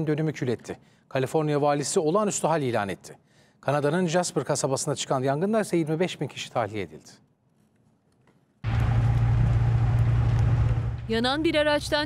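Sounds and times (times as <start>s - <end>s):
large fire roaring: 8.6s - 11.1s.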